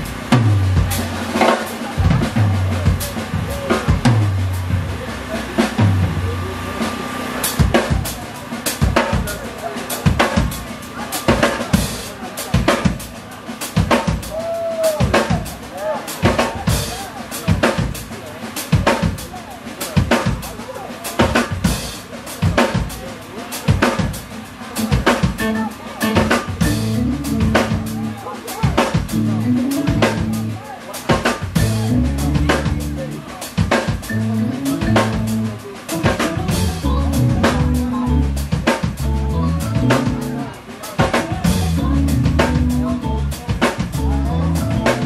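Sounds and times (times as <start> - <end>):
electric bass line: 0.0 - 8.2, 24.8 - 28.3, 29.0 - 30.6, 31.4 - 40.6, 41.2 - 45.0
drum kit playing a groove: 0.0 - 45.0.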